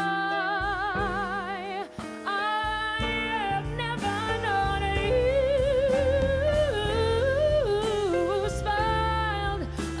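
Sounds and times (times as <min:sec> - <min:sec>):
woman singing with vibrato: 0:00.0 - 0:10.0
upright bass notes: 0:02.8 - 0:10.0.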